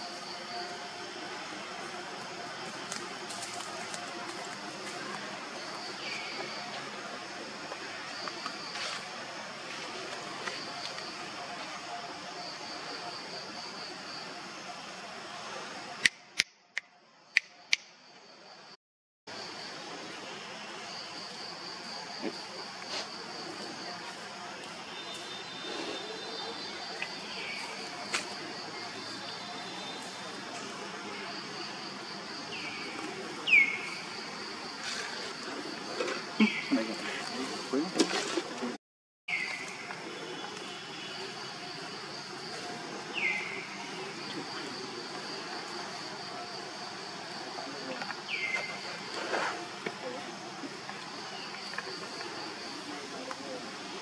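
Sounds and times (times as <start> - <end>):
high insect drone: 0.0 - 16.1, 17.2 - 38.7, 39.3 - 54.0.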